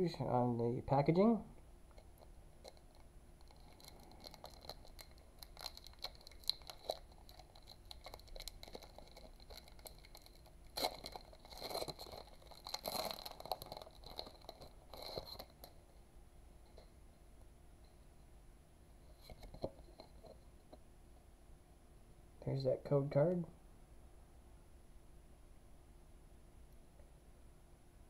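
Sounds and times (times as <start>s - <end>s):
foil wrapper crinkling: 1.9s - 15.8s
foil wrapper tearing: 2.6s - 15.8s.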